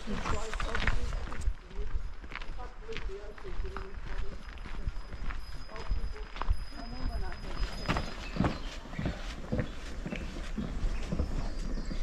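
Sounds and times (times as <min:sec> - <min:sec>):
footsteps on a trail: 0:00.0 - 0:12.0.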